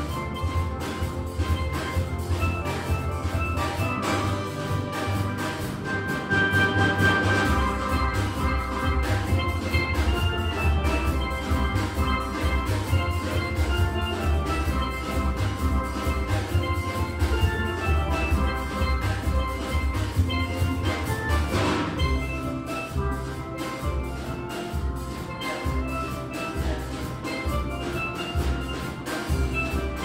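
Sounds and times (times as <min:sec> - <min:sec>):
steel band playing: 0:00.0 - 0:30.0.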